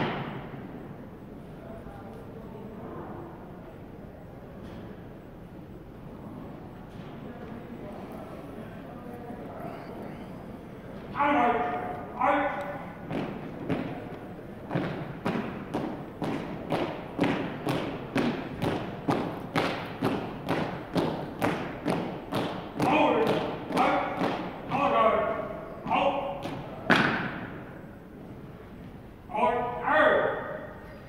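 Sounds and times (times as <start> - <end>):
loud boot stomp: 14.7 - 24.8.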